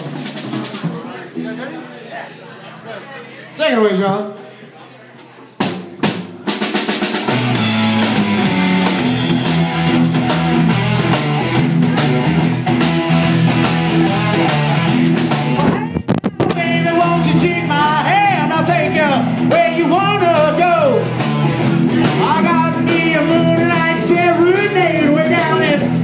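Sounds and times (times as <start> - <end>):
rock band playing: 0.0 - 3.4, 4.3 - 26.0
drum hits: 5.6 - 19.7
bass line: 7.2 - 26.0.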